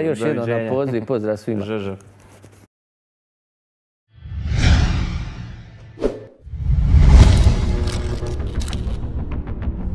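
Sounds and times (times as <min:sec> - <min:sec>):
whoosh sound effect: 0:04.2 - 0:08.2.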